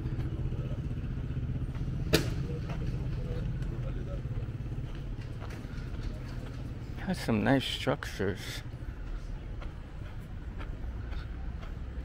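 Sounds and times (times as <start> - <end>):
vehicle engine humming: 0.0 - 12.0.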